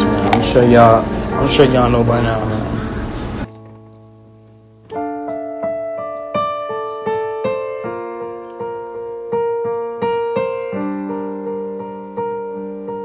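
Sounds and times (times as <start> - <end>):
slow piano melody: 0.0 - 13.0.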